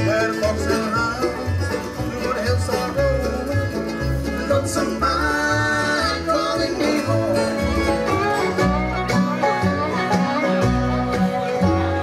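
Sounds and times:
bluegrass band playing: 0.0s - 12.0s.

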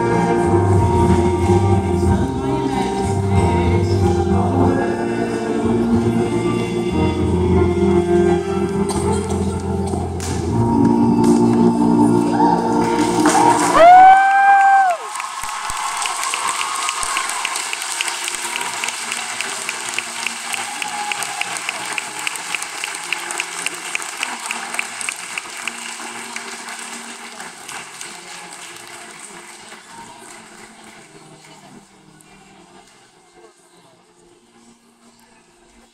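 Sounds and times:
audience cheering: 12.4s - 25.0s
audience applause: 12.7s - 31.6s.

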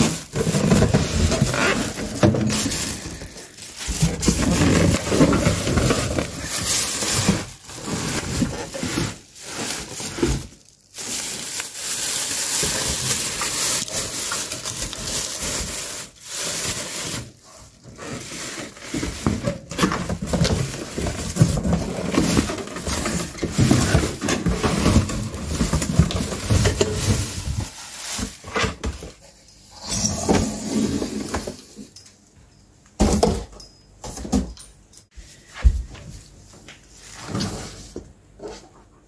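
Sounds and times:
plastic wrap crinkling: 0.0s - 29.2s.

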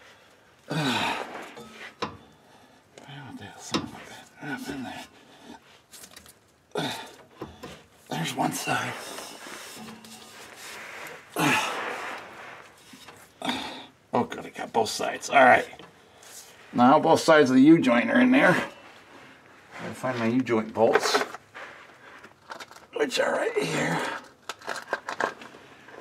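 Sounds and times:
effortful breaths: 0.0s - 5.9s, 6.7s - 14.1s, 15.8s - 16.8s
man muttering: 0.7s - 1.2s, 6.7s - 7.2s, 11.4s - 11.8s.

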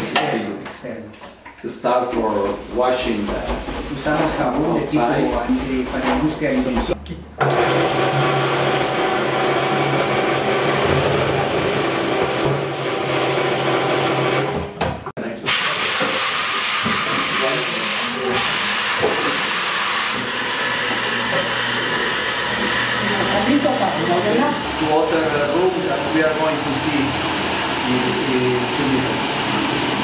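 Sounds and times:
electric motor spinning brush: 7.4s - 14.6s, 15.9s - 30.0s.

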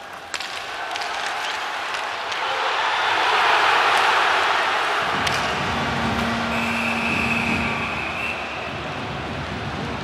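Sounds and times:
arena crowd noise: 0.0s - 10.0s
low horn tone: 5.7s - 8.6s
high whistle tone: 6.5s - 8.7s.

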